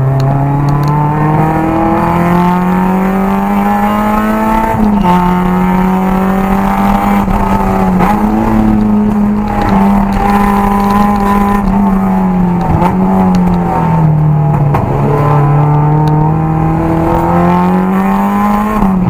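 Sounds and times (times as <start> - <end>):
car engine revving under load: 0.0 - 19.0.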